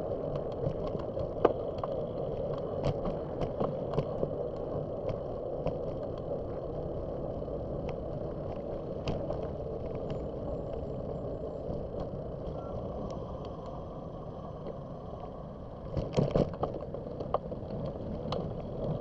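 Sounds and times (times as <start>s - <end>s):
bicycle tyre and wind rush: 0.0s - 19.0s
road traffic: 0.0s - 19.0s.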